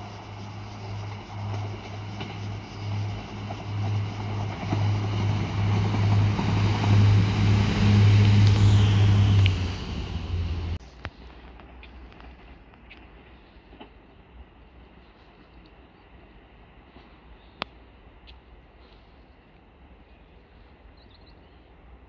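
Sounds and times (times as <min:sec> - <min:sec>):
distant rumble: 0:00.0 - 0:10.8
wheel and rail noise: 0:00.0 - 0:20.9
diesel train engine: 0:00.0 - 0:21.0.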